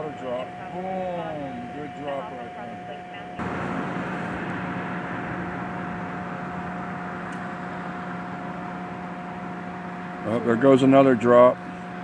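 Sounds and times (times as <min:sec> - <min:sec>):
distant helicopter hovering: 0:00.0 - 0:12.0.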